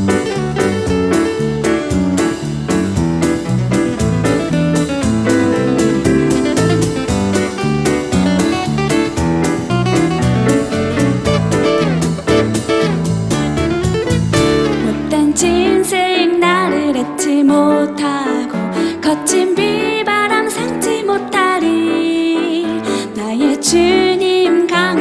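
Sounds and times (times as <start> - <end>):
congas: 0.0 - 15.1
acoustic guitar: 0.0 - 25.0
bass: 0.0 - 25.0
piano: 0.0 - 25.0.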